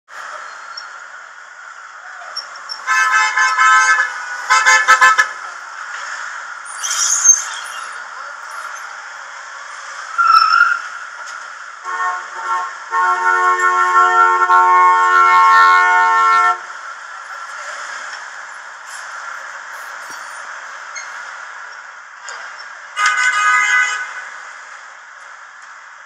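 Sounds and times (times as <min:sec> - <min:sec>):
traffic hiss: 0:00.1 - 0:26.0
car horns honking: 0:02.7 - 0:05.4, 0:11.8 - 0:16.7, 0:22.9 - 0:24.3
high squeal: 0:06.6 - 0:09.0, 0:10.1 - 0:11.0, 0:19.8 - 0:21.2.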